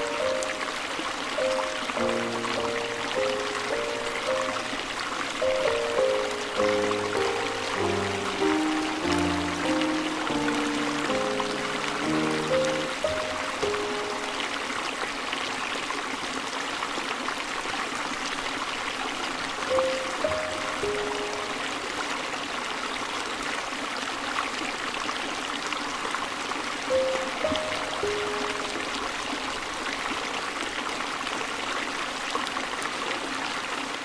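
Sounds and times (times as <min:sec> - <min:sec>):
slow soft instrumental melody: 0:00.0 - 0:14.5, 0:19.7 - 0:21.7, 0:26.9 - 0:28.9
flowing river: 0:00.0 - 0:34.0.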